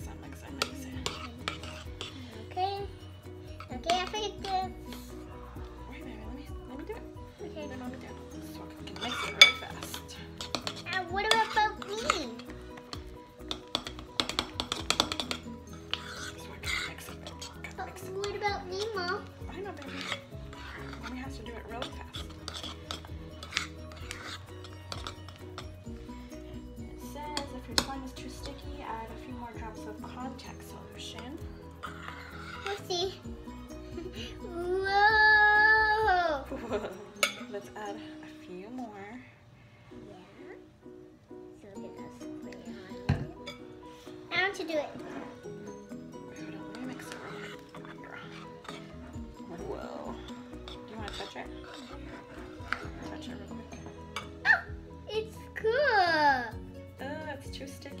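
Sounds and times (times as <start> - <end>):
light plucked music: 0.0 - 58.0
spoon scraping ceramic bowl: 0.5 - 2.5, 8.6 - 34.5, 37.2 - 37.5, 44.9 - 54.4
child's high-pitched cry: 34.4 - 36.5, 54.4 - 54.8.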